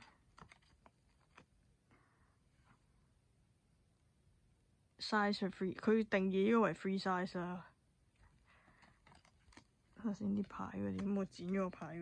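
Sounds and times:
clicks and rustles of paper tags: 0:00.0 - 0:01.7, 0:08.1 - 0:12.0.

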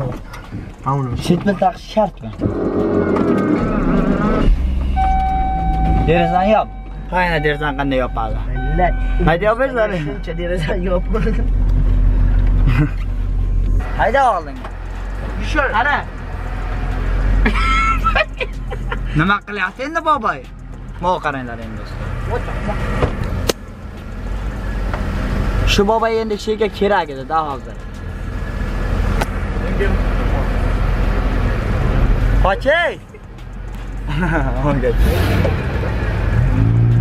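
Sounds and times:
car engine rumble from cabin: 0:00.0 - 0:37.0.

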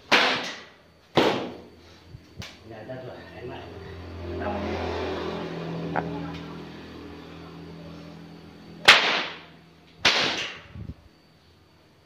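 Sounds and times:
whip cracks: 0:00.1 - 0:01.6, 0:08.8 - 0:10.6.

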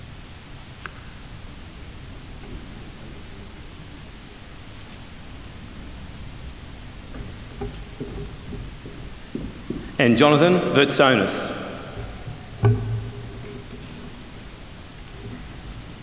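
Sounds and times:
room tone hiss: 0:00.0 - 0:16.0
faint rustling: 0:01.1 - 0:10.2, 0:11.8 - 0:16.0
soft knocks: 0:05.8 - 0:10.1, 0:11.9 - 0:16.0.

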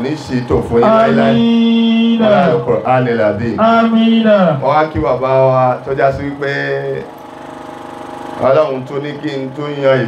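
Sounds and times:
man's amplified voice: 0:00.0 - 0:07.1
pulsing motor-like hum: 0:00.0 - 0:10.0.

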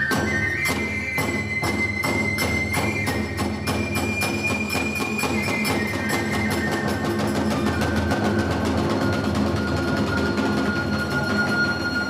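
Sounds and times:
bamboo flute long note: 0:00.0 - 0:12.0
rapid drum strokes: 0:00.0 - 0:12.0.

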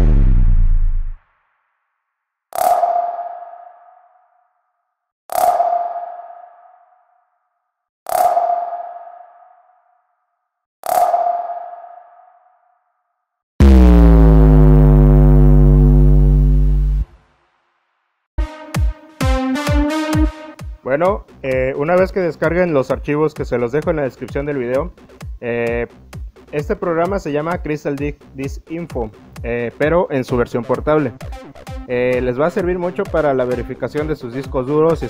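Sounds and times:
sonar-like pings: 0:02.6 - 0:04.7, 0:05.3 - 0:10.3, 0:10.9 - 0:13.0
low synth tone sliding down: 0:13.6 - 0:17.1.

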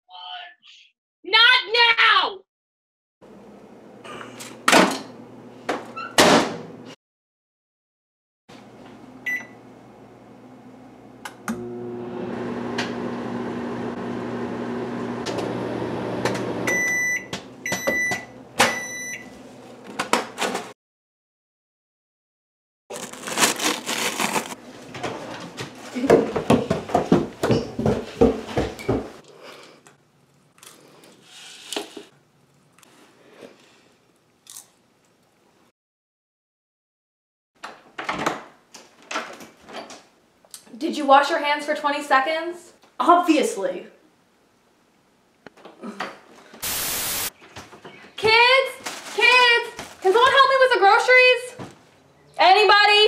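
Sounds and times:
microwave humming: 0:08.6 - 0:20.2
microwave beeps: 0:09.2 - 0:09.6, 0:16.6 - 0:19.4
faint crunches: 0:22.9 - 0:24.6.

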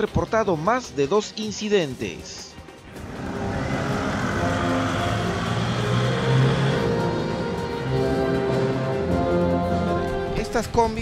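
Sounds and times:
background music: 0:00.0 - 0:11.0
road traffic: 0:02.8 - 0:10.3
vehicle engine passing: 0:02.9 - 0:09.4.

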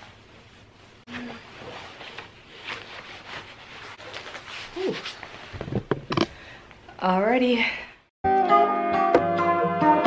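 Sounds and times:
fabric rustling: 0:00.0 - 0:05.6.

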